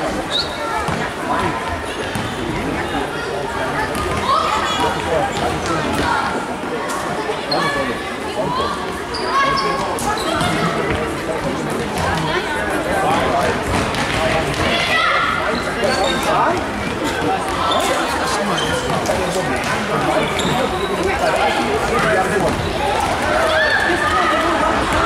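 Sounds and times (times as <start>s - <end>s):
voices calling in a hall: 0.0s - 25.0s.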